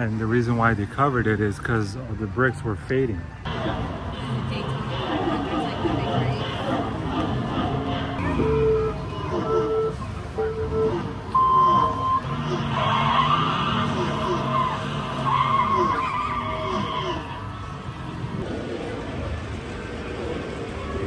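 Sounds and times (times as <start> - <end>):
race car engines revving: 3.4 - 21.0
tyres squealing: 7.7 - 17.8
countdown beeps: 8.2 - 12.3.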